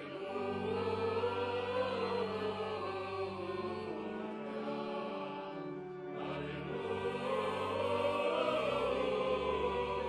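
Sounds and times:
church choir singing: 0:00.0 - 0:10.0
organ: 0:00.0 - 0:10.0.

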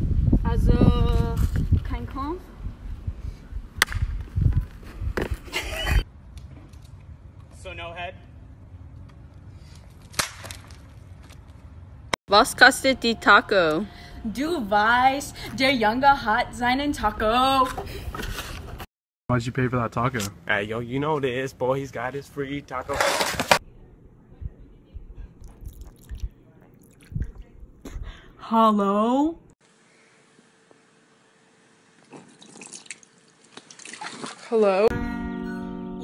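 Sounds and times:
object smacking pavement: 0:03.8 - 0:04.3, 0:09.9 - 0:11.5.

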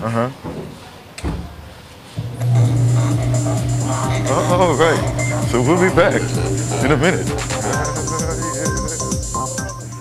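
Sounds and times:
music with loud low bass note: 0:02.2 - 0:10.0.

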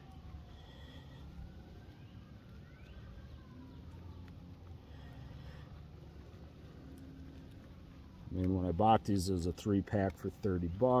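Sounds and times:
distant siren: 0:00.0 - 0:10.8.

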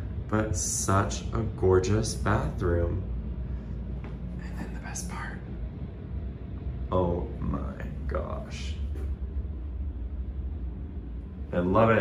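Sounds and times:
ventilation hum: 0:00.0 - 0:12.0.

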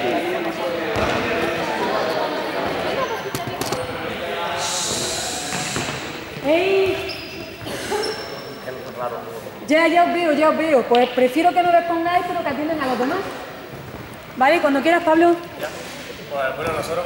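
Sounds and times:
voices chatting in echoing hall: 0:00.0 - 0:17.0
ball bouncing on hall floor: 0:00.9 - 0:01.4, 0:05.5 - 0:08.2, 0:13.7 - 0:14.6.

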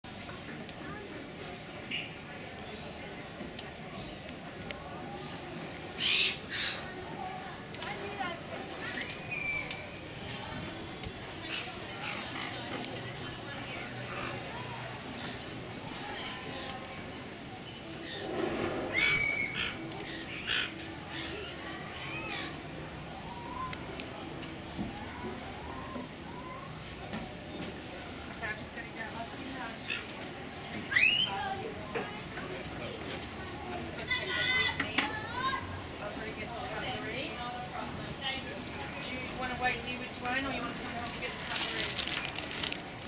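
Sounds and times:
outdoor chatter: 0:00.0 - 0:43.0.

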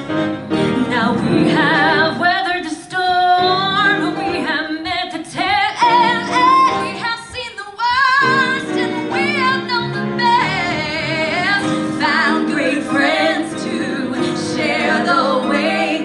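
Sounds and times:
piano: 0:00.0 - 0:16.0
women singing a duet: 0:00.8 - 0:16.0.

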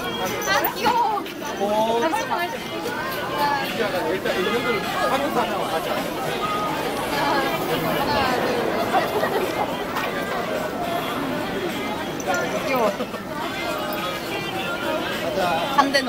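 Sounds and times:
people chattering: 0:00.0 - 0:16.0.

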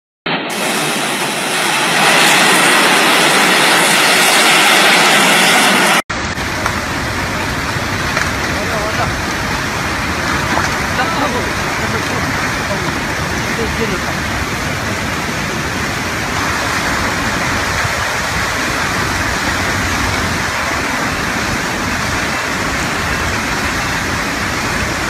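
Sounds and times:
landslide rushing: 0:00.3 - 0:25.0
mudslide flowing: 0:00.5 - 0:25.0.

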